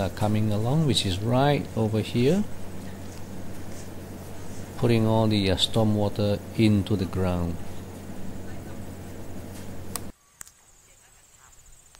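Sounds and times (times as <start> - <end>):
low steady hum: 0.0 - 11.8.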